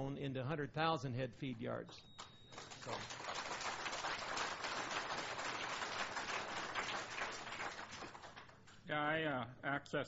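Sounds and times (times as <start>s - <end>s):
audience applauding: 2.5s - 8.6s.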